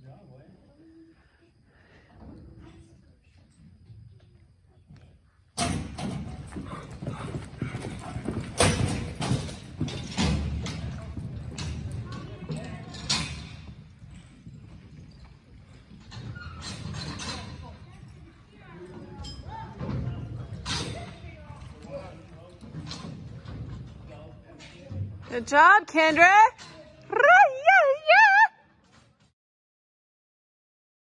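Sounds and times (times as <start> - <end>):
hoofbeats on soft dirt: 2.2 - 25.6.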